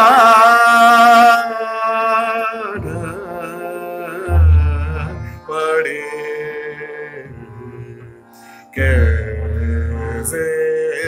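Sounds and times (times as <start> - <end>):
man singing classical vocal: 0.0 - 11.0.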